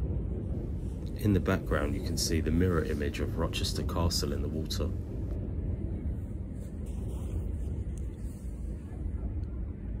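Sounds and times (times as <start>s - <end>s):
low rumble of outdoor background noise: 0.0s - 10.0s.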